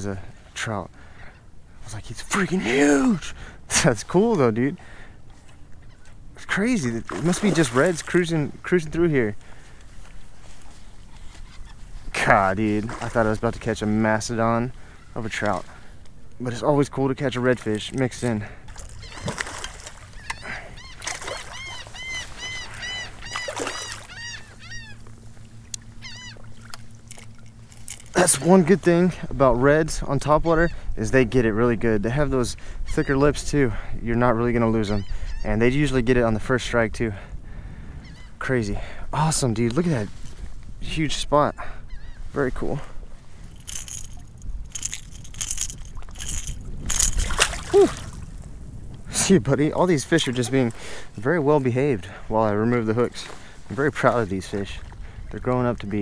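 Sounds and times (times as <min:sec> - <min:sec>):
water splashing and sloshing: 0:05.3 - 0:29.4, 0:42.6 - 0:56.0
fish splashing at water surface: 0:18.8 - 0:20.2, 0:21.0 - 0:24.2, 0:43.6 - 0:48.4
bird calling in short notes: 0:18.9 - 0:27.0, 0:41.5 - 0:42.4.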